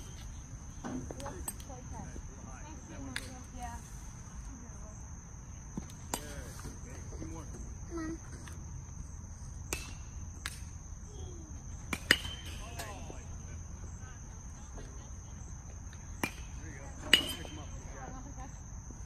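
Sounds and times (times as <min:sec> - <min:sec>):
crickets chirring: 0:00.0 - 0:19.0
metal bat hitting ball: 0:09.7 - 0:10.6, 0:11.9 - 0:12.9, 0:17.1 - 0:17.5.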